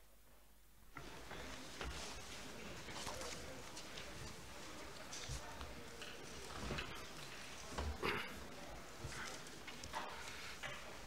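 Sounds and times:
large hall room noise: 0.0 - 11.0.

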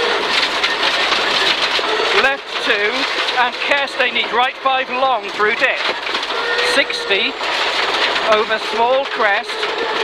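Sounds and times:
car engine running: 0.0 - 10.0
gravel stones rattling on underbody: 0.0 - 10.0.

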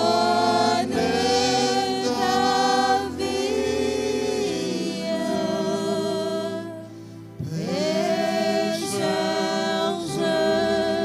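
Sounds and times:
voices singing worship song: 0.0 - 11.0.

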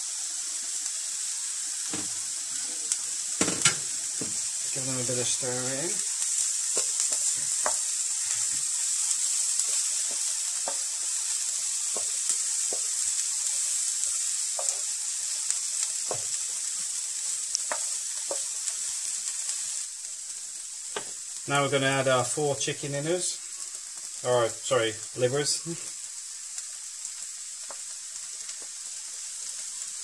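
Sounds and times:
onions sizzling in butter: 0.0 - 30.0
wooden spatula taps and scrapes: 6.7 - 8.7, 9.7 - 10.9, 17.6 - 18.5, 20.9 - 21.2.

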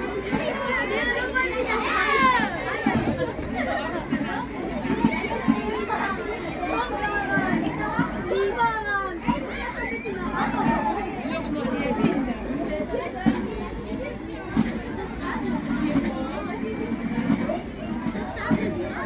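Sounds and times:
children shouting and chattering: 0.0 - 19.0
crowd talking and calling out: 0.0 - 19.0.

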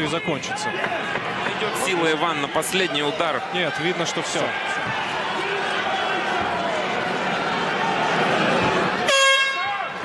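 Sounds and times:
arena crowd noise: 0.0 - 10.0
loud horn: 9.0 - 9.8.

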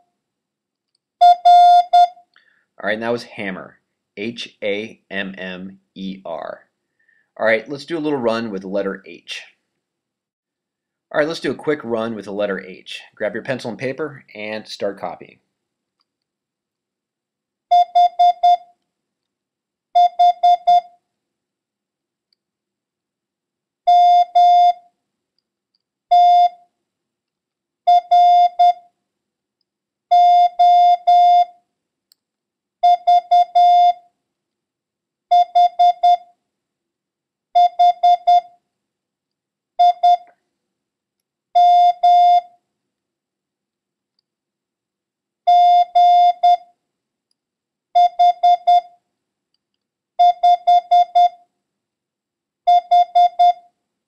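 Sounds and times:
morse code beeps: 17.7 - 18.6, 20.0 - 20.9, 35.3 - 36.3, 37.6 - 38.5, 39.8 - 40.3, 41.6 - 42.5, 45.5 - 46.6, 48.0 - 48.9, 50.2 - 51.4, 52.7 - 53.6.

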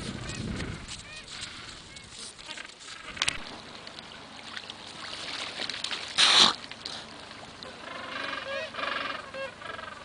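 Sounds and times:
animal honking calls: 7.7 - 10.0.

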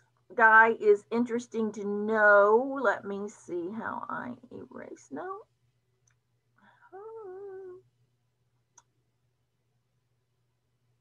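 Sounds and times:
woman humming: 6.9 - 7.8.

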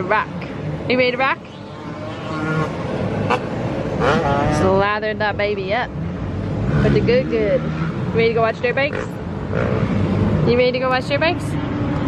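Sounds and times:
vehicle rushing noise: 0.4 - 12.0.

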